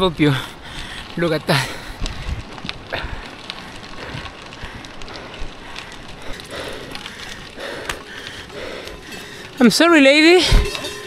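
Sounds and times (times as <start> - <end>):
wind rumble on microphone: 0.0 - 7.8
bike tyres rolling on gravel: 0.0 - 11.0.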